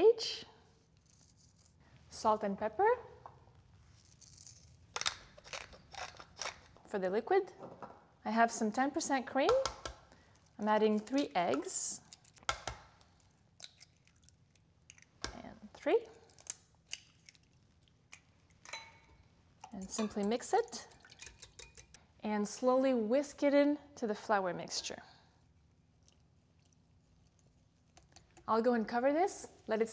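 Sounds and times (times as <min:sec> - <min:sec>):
pepper mill grinding: 0:04.0 - 0:06.7
eggshell cracking: 0:12.0 - 0:15.2, 0:16.2 - 0:18.7.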